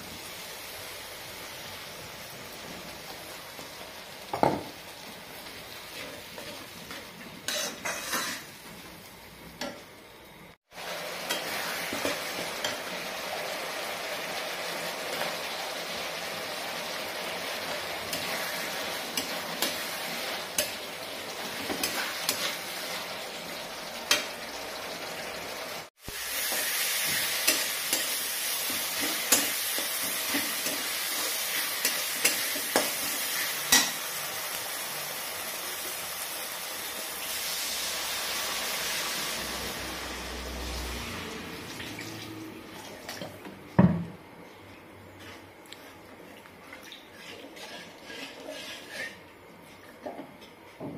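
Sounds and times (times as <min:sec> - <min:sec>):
paste sizzling in hot oil: 0:00.0 - 0:09.2, 0:10.4 - 0:41.0
metal spatula scraping pan: 0:07.5 - 0:08.5, 0:47.1 - 0:49.2.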